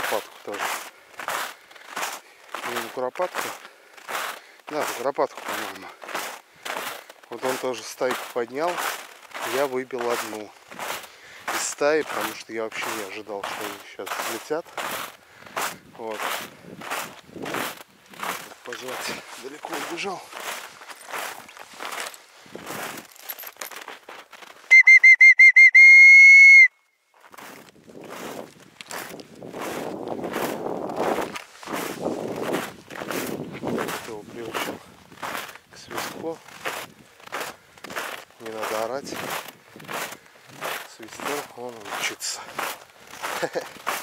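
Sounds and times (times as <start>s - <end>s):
footsteps crunching through snow: 0.0s - 24.7s, 27.1s - 44.0s
whistle trill: 24.7s - 26.8s.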